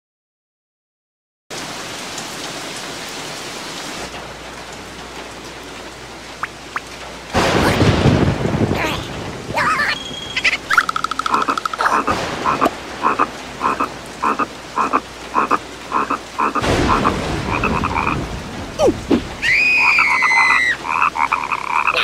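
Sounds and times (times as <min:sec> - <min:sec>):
rain: 0:01.5 - 0:22.0
short falling squeak: 0:09.9 - 0:10.8
frogs croaking: 0:09.9 - 0:18.3, 0:19.4 - 0:22.0.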